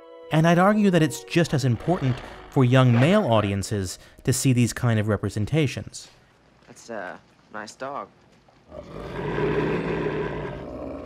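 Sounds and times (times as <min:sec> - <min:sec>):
wolf growling: 0:08.7 - 0:11.0.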